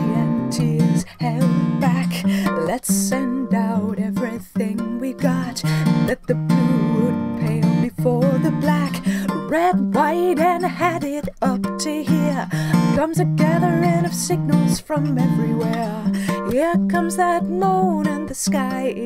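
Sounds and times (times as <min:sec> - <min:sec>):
acoustic guitar strumming: 0:00.0 - 0:19.0
woman singing: 0:00.0 - 0:19.0.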